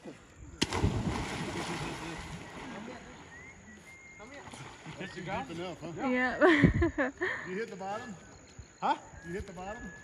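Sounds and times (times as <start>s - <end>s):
person splashing into water: 0.6s - 3.0s
churning water: 0.6s - 3.3s.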